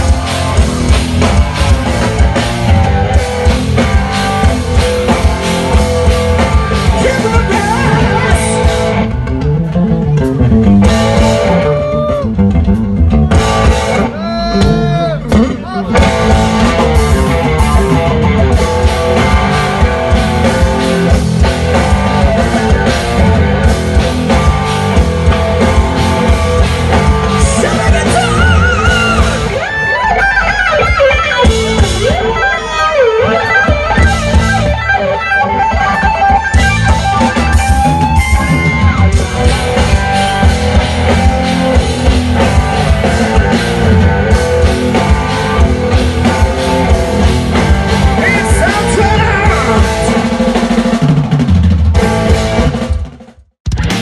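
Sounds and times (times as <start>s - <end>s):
electric guitar solo: 0.0s - 50.4s
bass guitar: 0.0s - 54.0s
drums: 0.0s - 54.0s.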